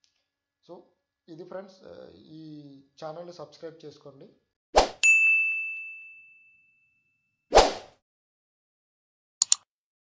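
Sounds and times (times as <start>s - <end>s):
bright ding: 5.0s - 7.4s.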